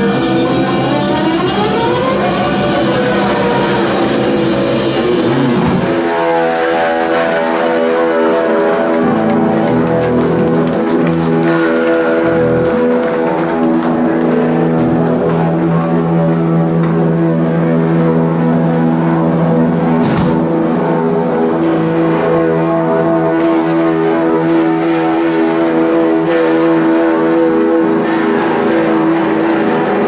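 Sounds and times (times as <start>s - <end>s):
electric guitars and bass droning: 0.0s - 30.0s.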